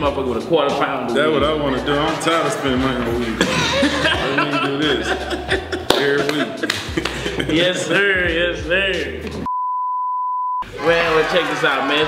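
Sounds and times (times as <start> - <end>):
electronic test-tone beep: 9.5 - 10.6.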